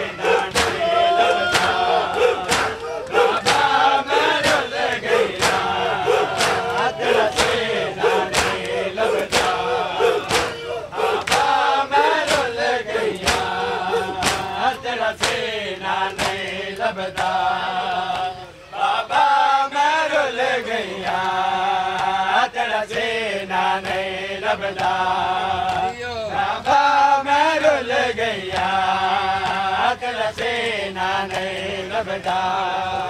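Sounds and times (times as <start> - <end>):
men beating their chests: 0.0 - 15.5, 16.1 - 16.6.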